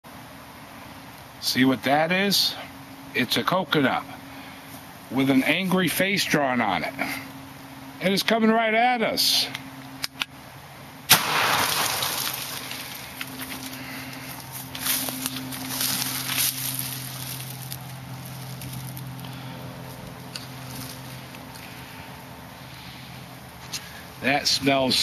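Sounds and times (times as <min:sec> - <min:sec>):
steady low hum: 0:00.1 - 0:25.0
gunshot: 0:11.1 - 0:12.4
footsteps through dry brush: 0:11.3 - 0:22.4.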